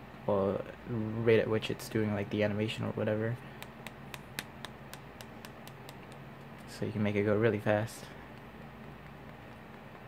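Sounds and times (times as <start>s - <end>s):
computer hum: 0.0s - 10.0s.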